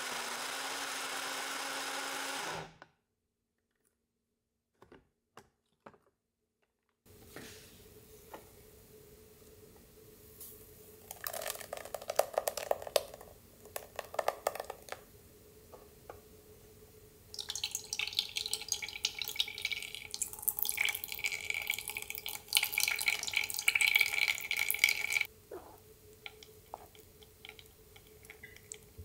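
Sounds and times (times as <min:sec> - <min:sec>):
pulp pouring into strainer: 0:11.1 - 0:14.9, 0:17.4 - 0:25.3
juice trickling and splashing: 0:17.4 - 0:25.3.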